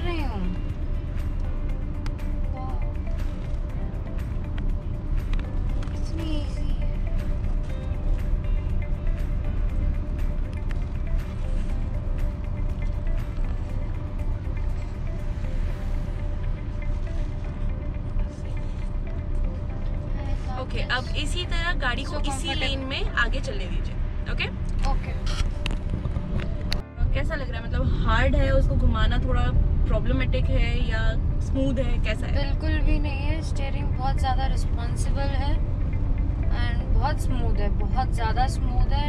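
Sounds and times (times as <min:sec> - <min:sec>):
background music: 0:00.0 - 0:39.0
road and engine rumble in car: 0:00.0 - 0:39.0.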